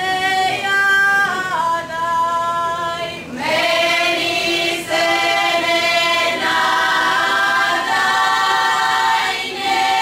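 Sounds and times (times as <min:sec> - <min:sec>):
folk choir singing: 0:00.0 - 0:10.0.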